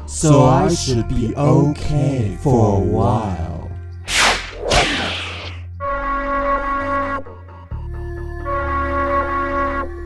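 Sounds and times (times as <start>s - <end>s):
whoosh sweeping down: 4.1s - 5.6s.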